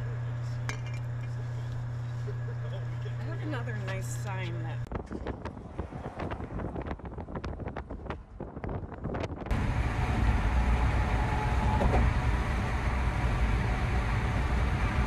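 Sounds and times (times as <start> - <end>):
tyre and engine rumble: 0.0 - 15.0
gusty rush of road noise: 4.8 - 15.0.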